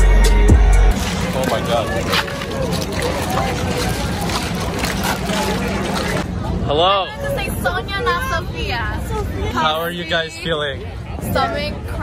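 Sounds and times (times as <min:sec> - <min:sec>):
outdoor crowd rumble: 0:00.0 - 0:12.0.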